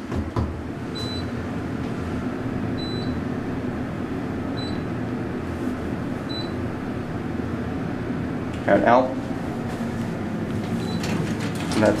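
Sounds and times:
elevator low hum: 0:00.0 - 0:12.0
elevator doors opening: 0:10.5 - 0:12.0
mechanical clicks and rattling: 0:11.0 - 0:12.0.

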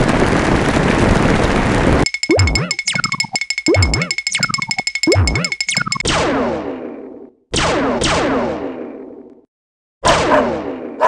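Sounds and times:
fast ticking beat: 0:02.0 - 0:06.0
cartoon springy boings: 0:02.0 - 0:06.1.

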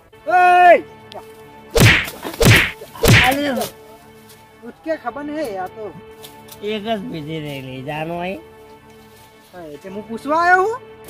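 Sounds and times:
loud whacks of blows: 0:01.8 - 0:03.5.

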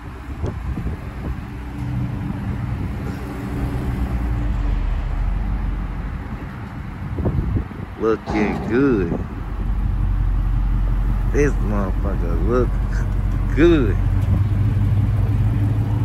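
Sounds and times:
car engine deep rumble: 0:00.0 - 0:16.0.

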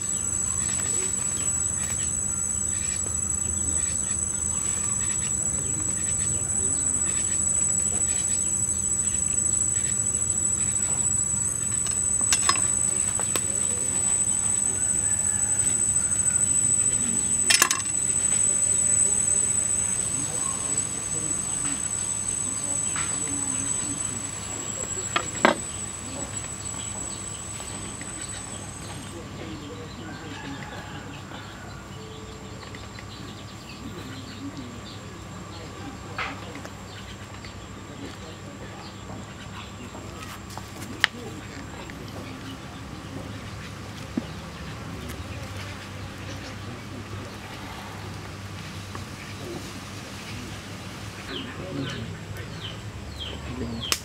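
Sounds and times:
insects chirring: 0:00.0 - 0:54.0.

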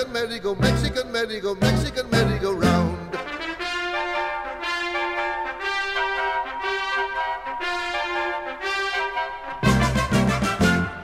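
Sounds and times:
brass section playing held chords: 0:01.6 - 0:11.0.

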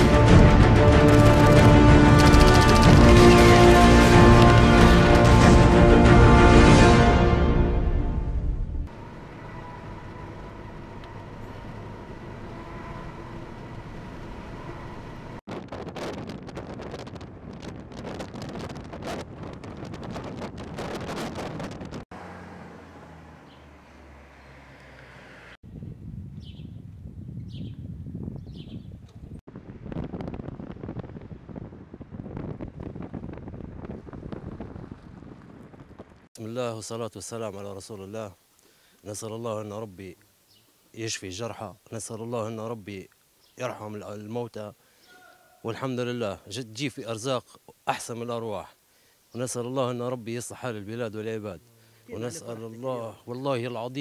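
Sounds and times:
vehicle noise: 0:00.0 - 0:06.6, 0:08.8 - 0:15.5, 0:21.2 - 0:25.6
wind on microphone: 0:15.5 - 0:22.1, 0:25.6 - 0:36.3.

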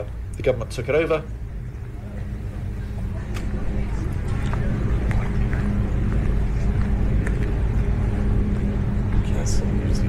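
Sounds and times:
low street rumble: 0:00.0 - 0:10.0.

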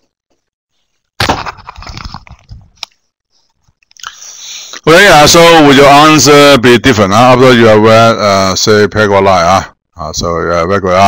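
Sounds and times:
crackling and rustling on microphone: 0:00.0 - 0:04.2.

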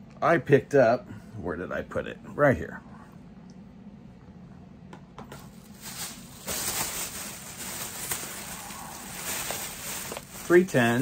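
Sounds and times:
packages rustling and scraping: 0:05.3 - 0:11.0
small clicks of packages: 0:05.9 - 0:10.6.

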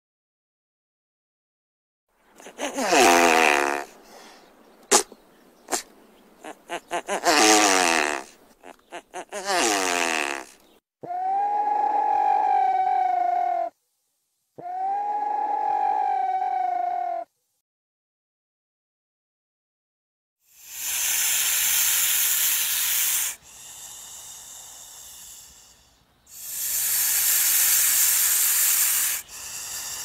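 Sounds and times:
long steady animal calls: 0:02.2 - 0:04.8, 0:05.5 - 0:13.8, 0:14.6 - 0:17.3, 0:20.5 - 0:30.0
animal calls falling in pitch: 0:11.0 - 0:13.8, 0:14.6 - 0:17.3.

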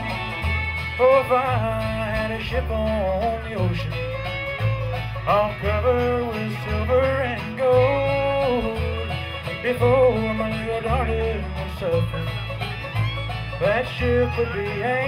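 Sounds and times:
person singing: 0:00.0 - 0:04.3, 0:05.2 - 0:12.6, 0:13.6 - 0:15.0
acoustic guitars: 0:00.0 - 0:15.0
banjo: 0:00.0 - 0:15.0
fiddle: 0:00.0 - 0:15.0
upright bass walking: 0:00.0 - 0:15.0.

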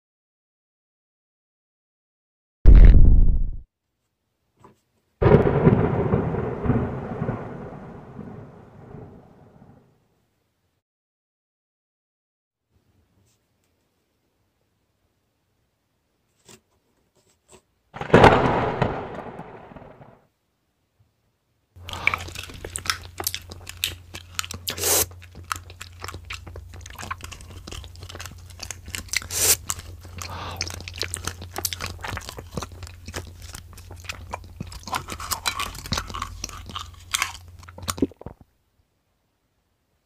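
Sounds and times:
sharp crack: 0:02.7 - 0:03.6, 0:05.2 - 0:09.8, 0:18.0 - 0:20.2
lightning crackling blast: 0:05.2 - 0:10.0, 0:18.0 - 0:20.2
chewing crunchy food: 0:21.8 - 0:38.5.

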